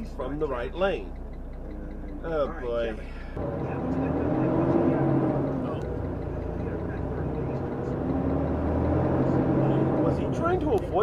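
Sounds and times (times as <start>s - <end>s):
diesel truck engine from inside cab: 0.0s - 11.0s.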